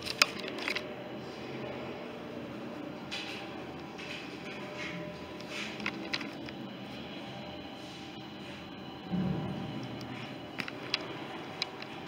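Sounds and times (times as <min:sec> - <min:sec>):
indoor background noise: 0:00.0 - 0:12.0.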